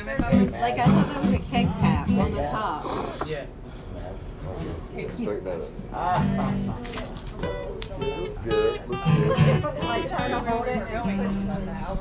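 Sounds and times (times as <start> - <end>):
people talking: 0.0 - 12.0
acoustic guitar plucked and strummed: 0.2 - 2.5, 6.1 - 11.7.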